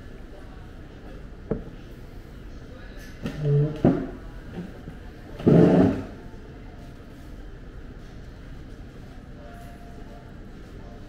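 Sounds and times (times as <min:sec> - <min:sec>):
wooden chair scraping on floor: 0:05.4 - 0:06.2.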